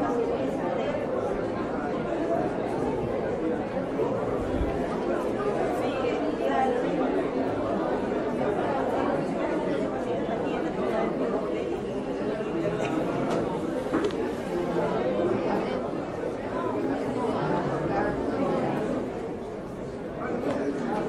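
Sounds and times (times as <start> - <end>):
crowd murmur in supermarket: 0.0 - 21.0.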